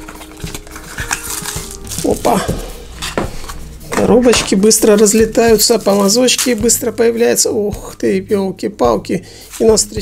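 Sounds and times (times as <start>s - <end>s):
rustle of card and wrapping: 0.0s - 2.6s, 5.0s - 6.7s.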